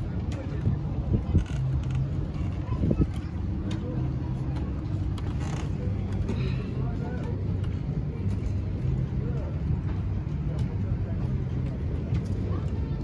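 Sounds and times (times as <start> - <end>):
wind on microphone: 0.0 - 6.0
faint indistinct voices: 0.0 - 13.0.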